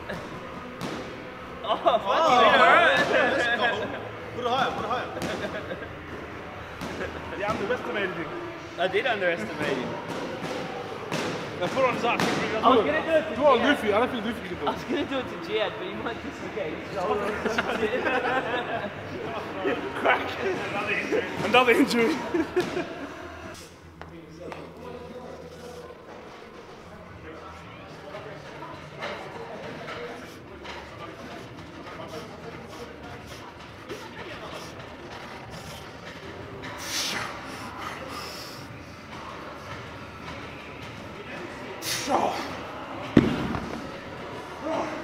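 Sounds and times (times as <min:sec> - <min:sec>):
faint voices: 0:00.0 - 0:45.0.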